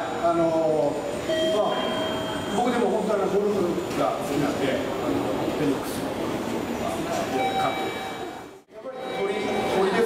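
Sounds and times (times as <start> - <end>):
man speaking: 8.7 - 10.0.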